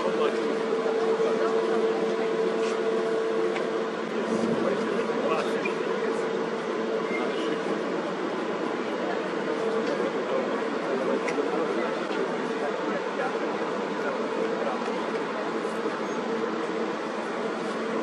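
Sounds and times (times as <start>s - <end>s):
steady mechanical hum: 0.0s - 18.0s.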